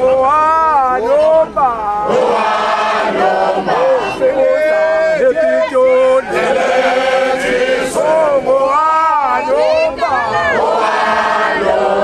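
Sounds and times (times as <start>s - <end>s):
men chanting in unison: 2.0s - 12.0s.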